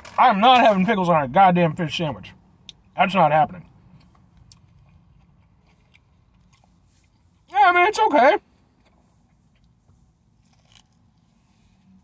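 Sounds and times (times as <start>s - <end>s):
chewing crispy food: 3.6s - 7.5s, 8.4s - 11.3s
soft short crunches: 8.5s - 12.0s.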